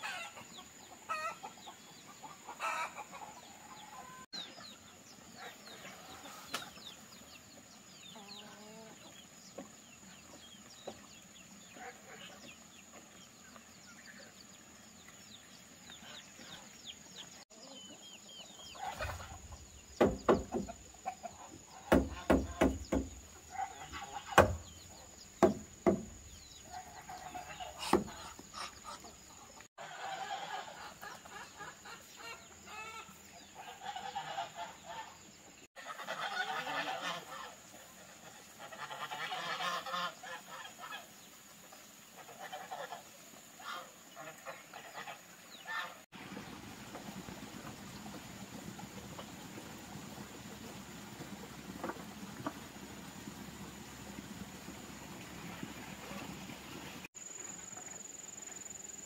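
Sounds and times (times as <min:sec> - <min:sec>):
waterfowl honking: 0:18.8 - 0:19.5, 0:20.2 - 0:25.2, 0:26.6 - 0:29.2, 0:29.8 - 0:35.2, 0:35.8 - 0:41.1, 0:42.2 - 0:46.0
sharp loud knocks: 0:20.0 - 0:20.8, 0:21.9 - 0:23.3, 0:24.3 - 0:24.8, 0:25.4 - 0:26.2.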